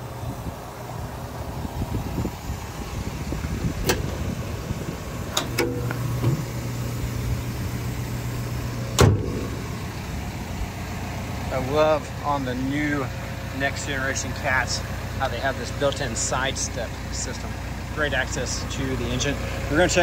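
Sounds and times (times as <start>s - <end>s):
steady low hum: 0.0s - 19.7s
push-button latch clicking: 5.3s - 6.4s
metal door banging against stop: 5.3s - 6.5s, 8.9s - 9.6s.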